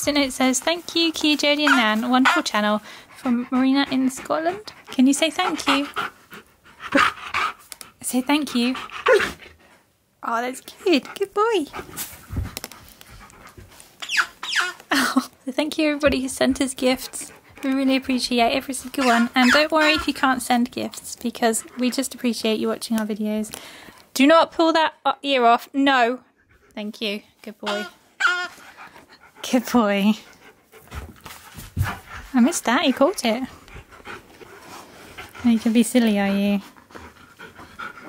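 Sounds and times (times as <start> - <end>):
dog panting: 0.0 - 14.5, 15.7 - 22.9, 26.0 - 38.0.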